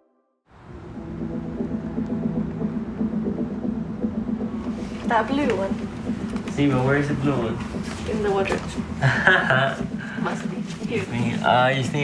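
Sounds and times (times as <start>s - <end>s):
soft music: 0.5s - 12.0s.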